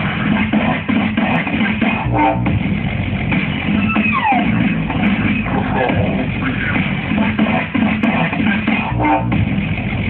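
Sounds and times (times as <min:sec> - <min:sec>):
loud music with guitar and drums: 0:00.0 - 0:10.0.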